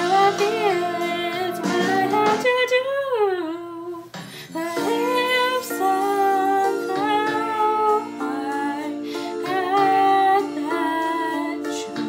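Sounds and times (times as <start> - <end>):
instrumental accompaniment: 0.0 - 2.8, 4.0 - 12.0
woman singing: 0.0 - 12.0.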